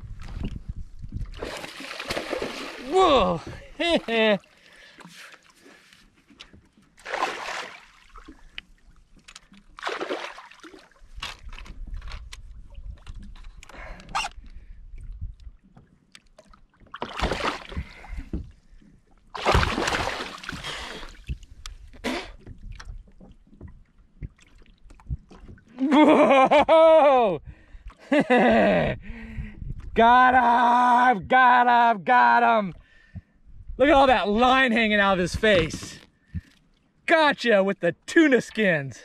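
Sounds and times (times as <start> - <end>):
water sloshing around kayak: 0.0 - 26.3.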